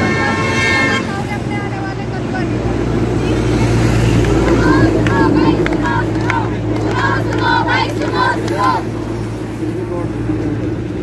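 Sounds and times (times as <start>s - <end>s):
horn toot: 0.0s - 1.3s
low rumble: 1.7s - 11.0s.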